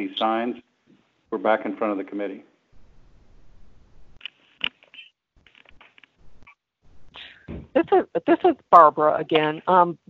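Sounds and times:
small rustles and clicks: 4.2s - 6.6s.

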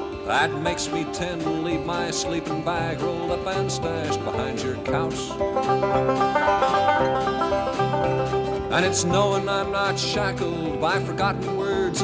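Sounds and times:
acoustic guitar: 0.0s - 12.0s
banjo picking: 0.0s - 12.0s.

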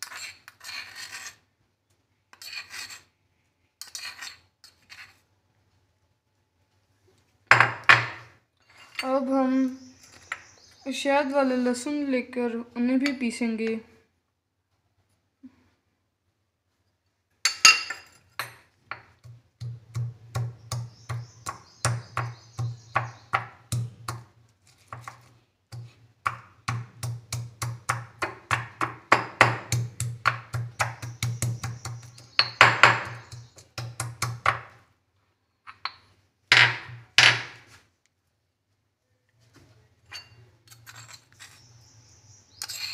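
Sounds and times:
stone pestle pounding in mortar: 18.9s - 24.3s, 25.8s - 34.7s.

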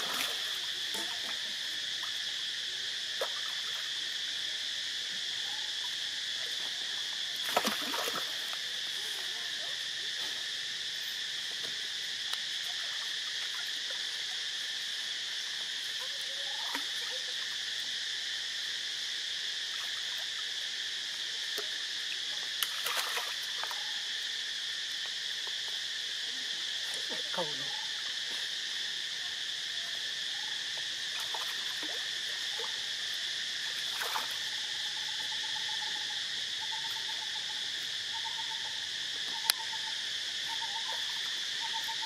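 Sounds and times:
water splash: 0.0s - 1.1s, 7.4s - 8.6s, 22.6s - 23.7s, 33.9s - 34.4s
high-pitched insect chorus: 0.0s - 42.0s.

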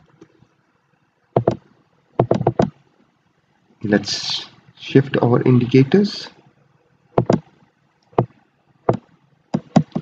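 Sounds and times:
computer mouse clicks: 1.4s - 1.6s, 2.2s - 2.8s, 7.2s - 10.0s.

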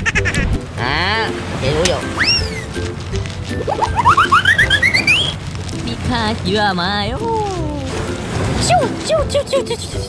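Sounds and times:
rising whistle-like chirps: 2.2s - 2.6s, 3.7s - 5.4s.

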